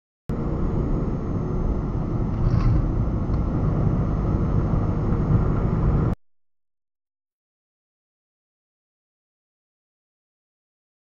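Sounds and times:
road and engine rumble: 0.3s - 6.2s.

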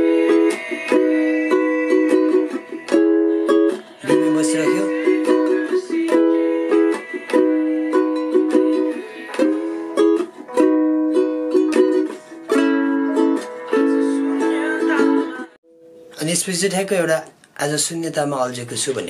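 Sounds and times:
ukulele strumming: 0.0s - 16.2s.

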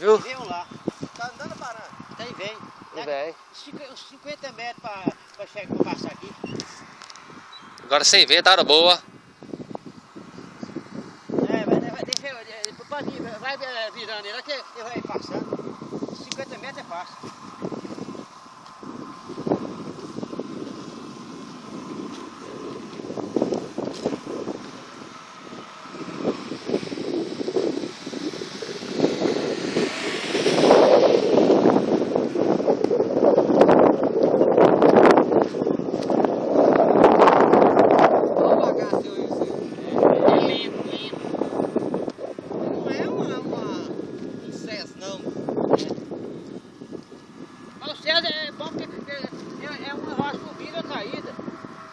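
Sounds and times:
wind buffeting microphone: 0.0s - 51.9s
distant model plane motor whine: 14.2s - 38.1s.

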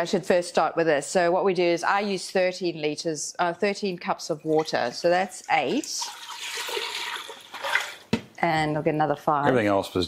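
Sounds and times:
water pouring into metal pot: 4.4s - 8.1s.

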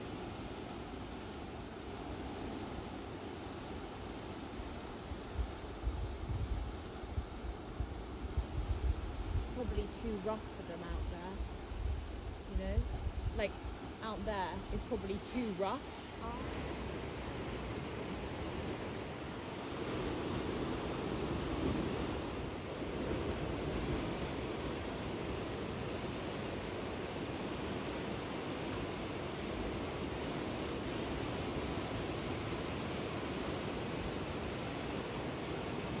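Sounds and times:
high-pitched insect chorus: 0.0s - 36.0s
wind noise: 5.2s - 18.9s.

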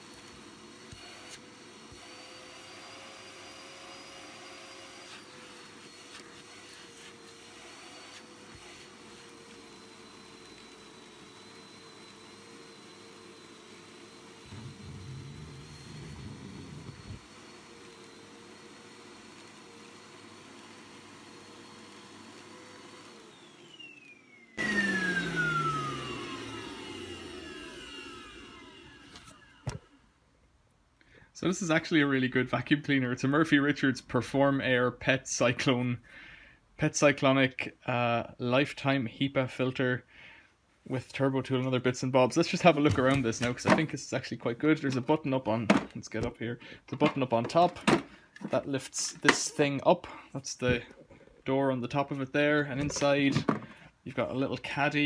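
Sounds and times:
vacuum cleaner motor whine: 0.0s - 30.0s, 42.5s - 43.9s
vacuum motor winding down: 0.0s - 30.0s
vacuum sucking up debris: 14.1s - 19.2s.

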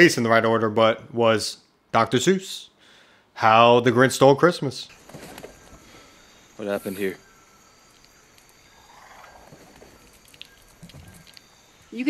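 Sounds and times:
faint forest ambience: 0.0s - 12.0s
small clicks and rustles: 7.9s - 11.9s.

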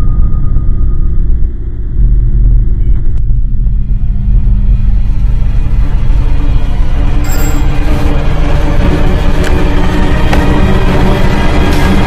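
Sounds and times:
low rumbling suspense drone: 0.0s - 12.0s.

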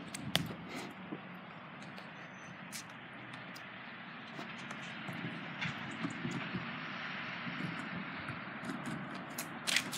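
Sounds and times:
skateboard wheels rolling on wet concrete: 7.8s - 9.9s.

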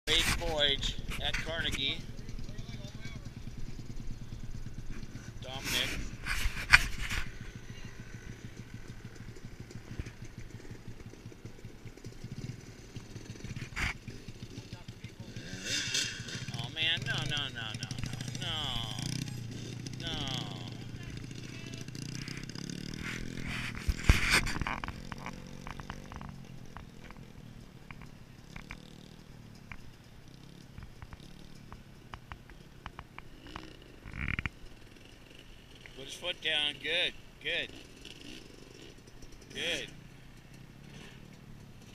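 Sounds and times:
dirt bike engine revving: 0.1s - 41.9s.

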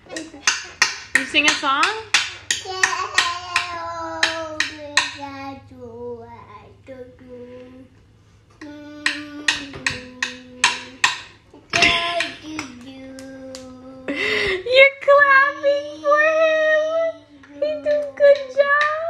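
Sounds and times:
sharp taps keeping a beat: 0.0s - 5.4s, 8.6s - 13.7s
child singing wordlessly: 2.5s - 8.0s, 8.6s - 14.2s, 15.3s - 19.0s.

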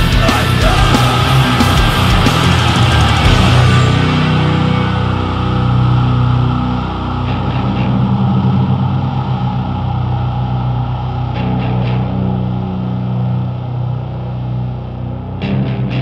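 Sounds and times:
heavy metal music: 0.0s - 16.0s.

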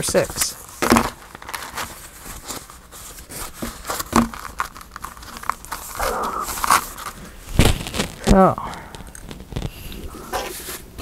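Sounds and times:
paper rustling and crinkling: 0.0s - 11.0s.

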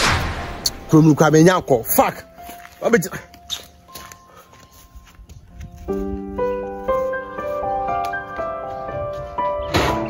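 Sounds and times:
background music with keyboard chords: 0.7s - 10.0s
footsteps on dirt path: 1.9s - 9.4s.

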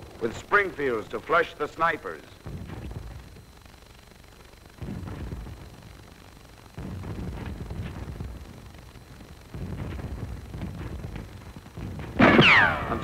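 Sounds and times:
deep rumbling booms: 2.4s - 3.7s, 4.8s - 13.0s
faint sharp cracks: 2.6s - 13.0s.

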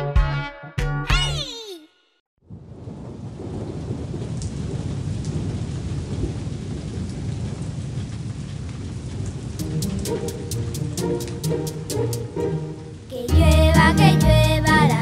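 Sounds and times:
low thunder rumble: 2.5s - 10.2s
steady rain falling: 2.5s - 15.0s
light plucked tune: 9.6s - 15.0s.

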